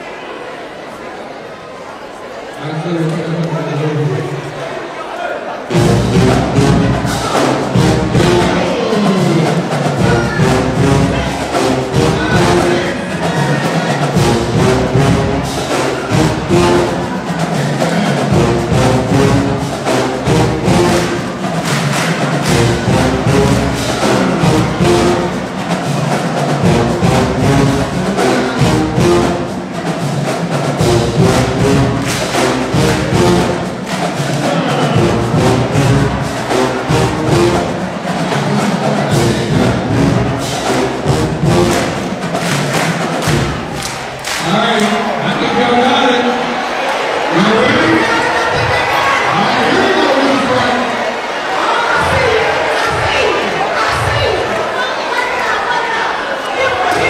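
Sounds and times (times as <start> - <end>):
drumline beating: 5.6 - 57.0
marching band brass: 5.6 - 57.0.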